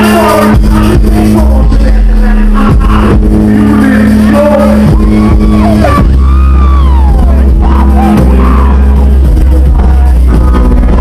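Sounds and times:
bass guitar notes: 0.0s - 11.0s
drums: 0.0s - 11.0s
live band playing dance music: 0.0s - 11.0s
person singing: 0.0s - 11.0s.

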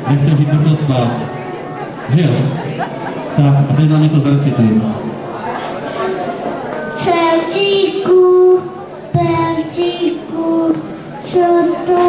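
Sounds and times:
child singing: 7.0s - 12.0s.

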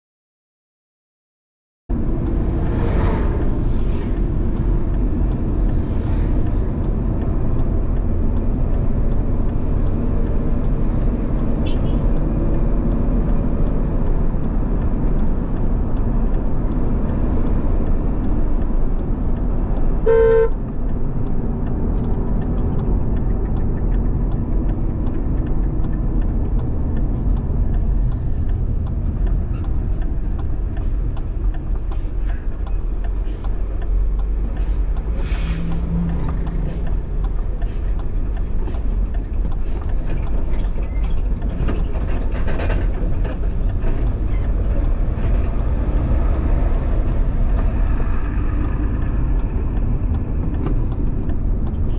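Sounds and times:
car engine and tyre rumble: 1.9s - 51.9s
brief rush of noise: 2.6s - 4.2s
car horn toot: 11.6s - 12.0s, 20.0s - 20.6s.

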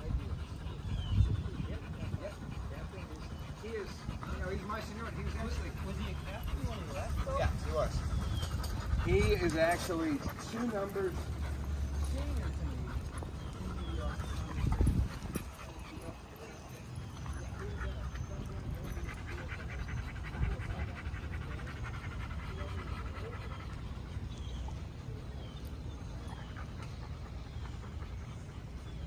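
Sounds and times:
wind rumble on microphone: 0.0s - 3.2s, 6.1s - 10.6s, 12.1s - 16.5s
dog panting: 0.0s - 29.0s.

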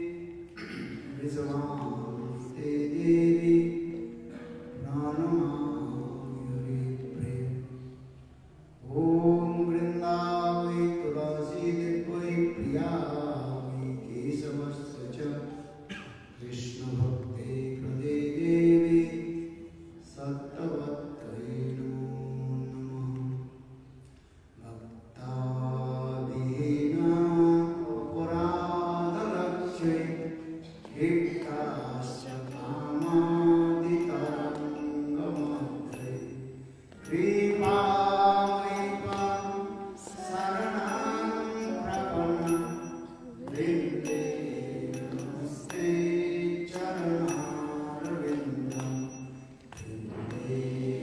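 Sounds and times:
man chanting a mantra: 0.0s - 8.0s, 8.8s - 23.6s, 24.6s - 51.0s
man chanting in held notes: 0.0s - 23.8s.

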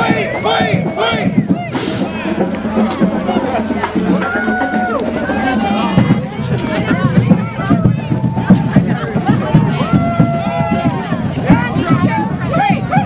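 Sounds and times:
crowd talking and calling out: 0.0s - 13.0s.

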